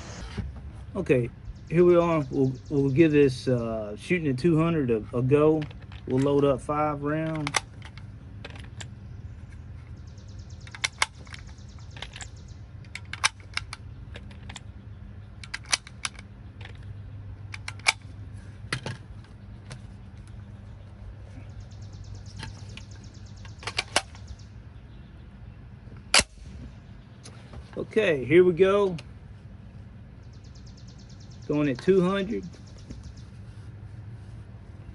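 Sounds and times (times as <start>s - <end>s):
cartridges clicking into magazine: 10.6s - 14.7s, 15.4s - 16.8s, 17.4s - 18.1s.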